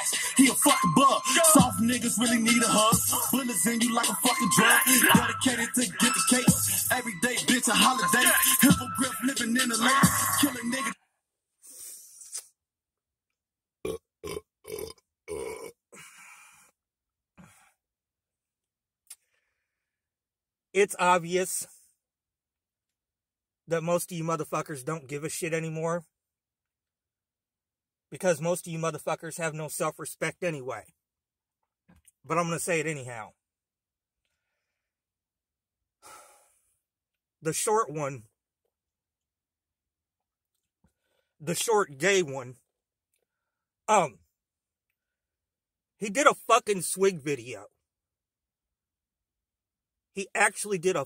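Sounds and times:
short breath: 11.6s - 12.4s, 16.0s - 16.8s, 19.2s - 20.0s, 36.0s - 36.8s
man belching: 13.8s - 15.8s.

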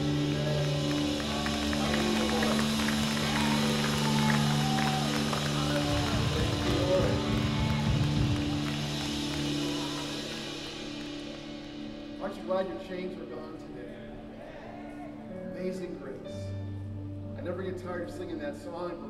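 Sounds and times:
congregation singing: 0.0s - 11.9s
low rumble: 0.0s - 12.9s
keyboard sustained chords: 0.0s - 19.0s.

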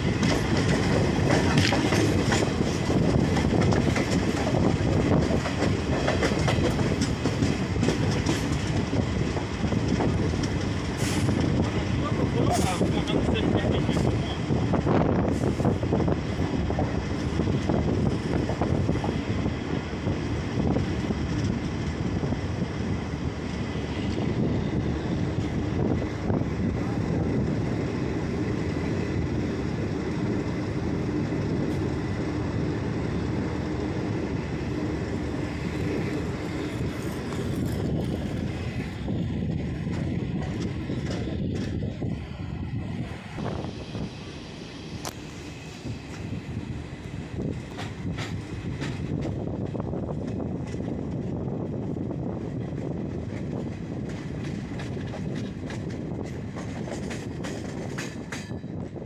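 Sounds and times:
rushing air: 0.0s - 59.0s
train wheels rumbling on rails: 0.0s - 59.0s.

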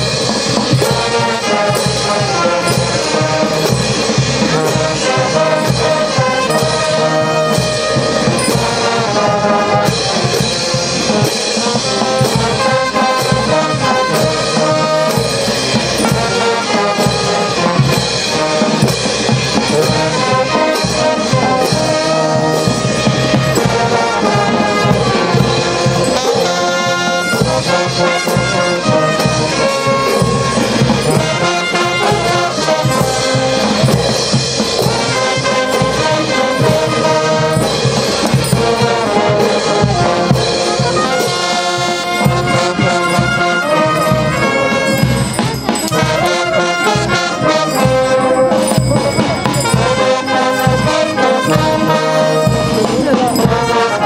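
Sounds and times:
brass band playing dance tune: 0.0s - 54.0s.

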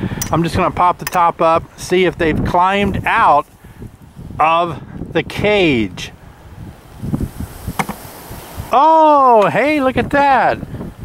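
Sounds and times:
low knocks on hive cover: 7.8s - 8.0s.

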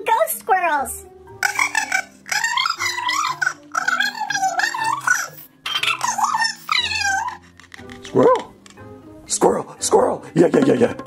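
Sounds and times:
light background music: 0.0s - 11.0s
cartoon voice speaking: 1.4s - 7.4s
high-pitched cartoon voice laughing: 1.4s - 7.5s.

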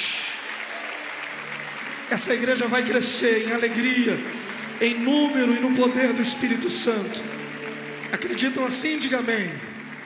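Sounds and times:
crowd clapping: 0.0s - 10.0s.

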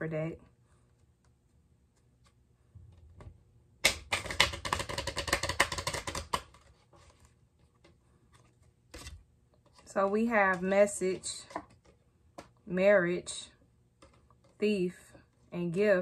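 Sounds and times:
cards being shuffled: 3.8s - 12.6s, 14.0s - 14.6s.

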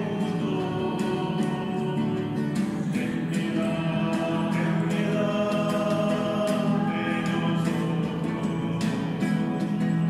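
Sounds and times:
strummed acoustic guitar: 0.0s - 10.0s
voices singing a hymn: 0.0s - 10.0s.

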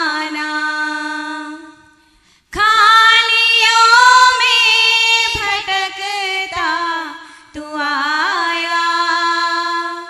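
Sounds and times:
woman singing devotional song: 0.0s - 10.0s.

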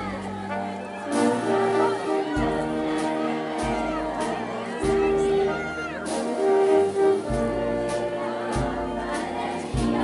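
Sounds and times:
procession band music: 0.0s - 10.0s
slow heavy drum beats: 0.0s - 10.0s.

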